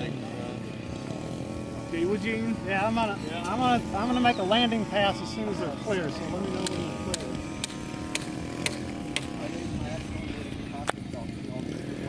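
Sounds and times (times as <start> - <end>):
model plane engine droning: 0.0 - 12.0
sharp clicks: 6.6 - 9.3.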